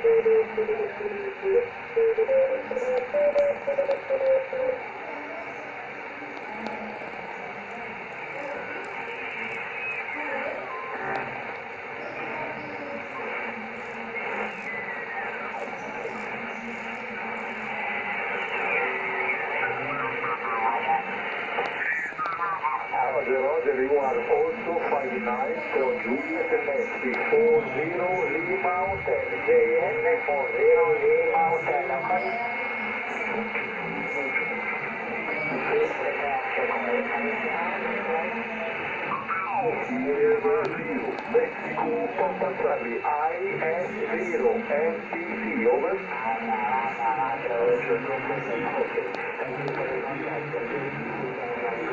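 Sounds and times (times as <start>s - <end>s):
garbled radio voices: 0.0s - 51.9s
radio hiss: 0.0s - 51.9s.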